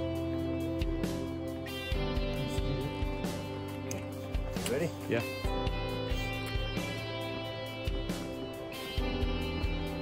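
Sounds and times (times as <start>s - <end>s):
guitar music with steady beat: 0.0s - 10.0s.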